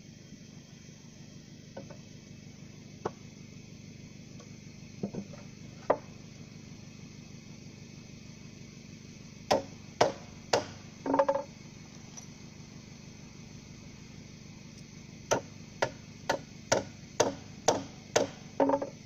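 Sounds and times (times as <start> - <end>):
hammer striking timber: 9.5 - 11.5, 15.3 - 19.0.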